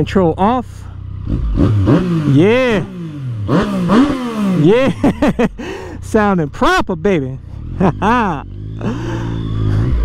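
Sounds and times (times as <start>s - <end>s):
motorcycle engine at low revs: 0.0s - 10.0s.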